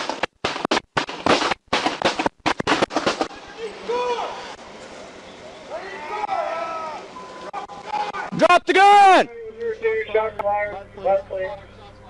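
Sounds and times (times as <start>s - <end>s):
people shouting: 3.3s - 4.5s, 5.7s - 9.3s.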